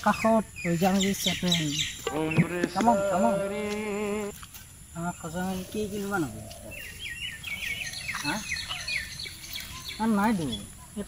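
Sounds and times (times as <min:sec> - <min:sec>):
small bird chirping: 0:00.0 - 0:04.3, 0:05.0 - 0:11.0.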